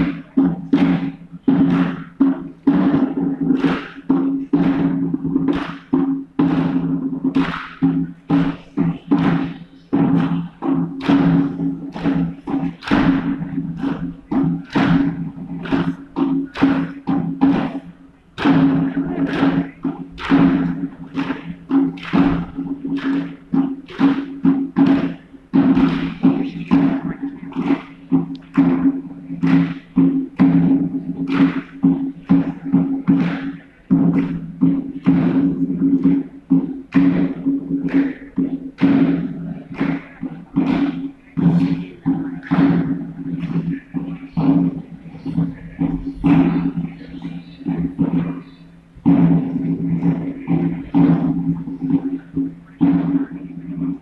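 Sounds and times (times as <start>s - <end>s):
drum steady beat: 0.0s - 54.0s.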